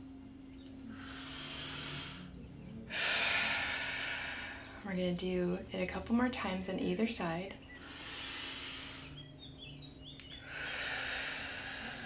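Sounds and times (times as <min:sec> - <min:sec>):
woman breathing deeply: 0:00.9 - 0:04.9, 0:07.8 - 0:09.3, 0:10.3 - 0:12.0.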